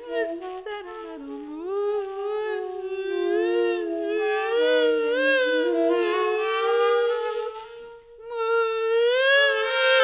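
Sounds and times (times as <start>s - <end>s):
tenor saxophone long note: 0.0s - 8.6s.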